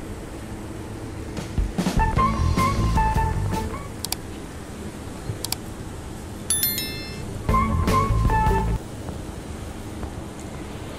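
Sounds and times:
bell-like notification ding: 6.5s - 7.4s.

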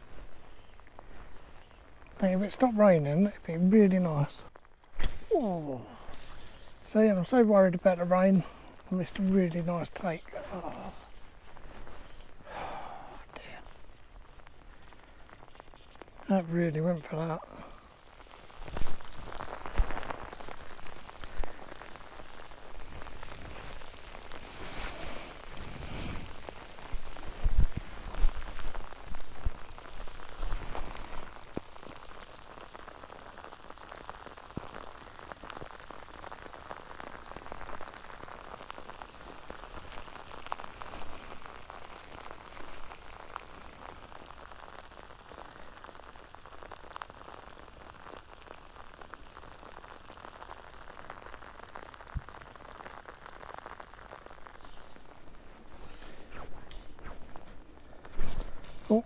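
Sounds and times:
rain pattering: 0.0s - 59.0s.

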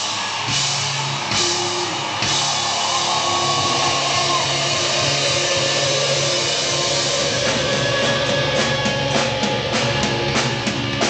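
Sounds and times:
drum kit: 0.0s - 11.0s
electric guitar: 3.1s - 11.0s.

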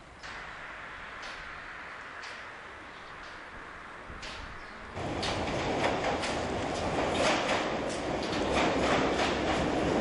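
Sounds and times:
train rail rumble: 0.0s - 10.0s
wheels clicking over rail joints: 1.1s - 10.0s.

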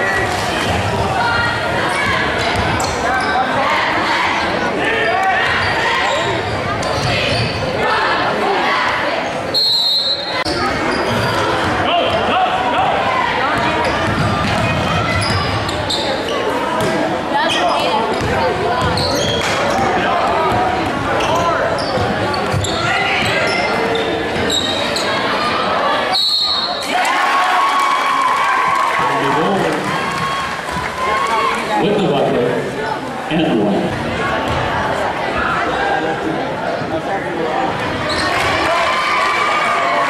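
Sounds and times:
short high whistle: 9.6s - 10.4s, 26.1s - 26.8s
basketball bouncing on court: 13.5s - 15.6s, 18.1s - 23.5s, 33.8s - 34.7s.

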